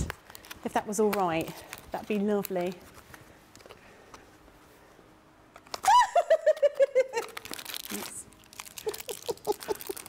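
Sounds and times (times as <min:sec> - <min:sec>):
person laughing: 0:05.8 - 0:07.5, 0:08.8 - 0:10.0.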